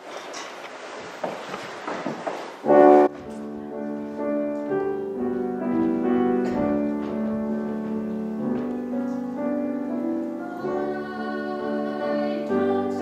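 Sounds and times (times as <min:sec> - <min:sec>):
slow piano chords: 0:02.6 - 0:13.0.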